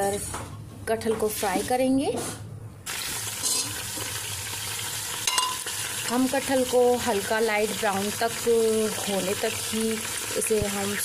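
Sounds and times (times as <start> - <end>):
food sizzling in hot oil: 2.8 - 11.0.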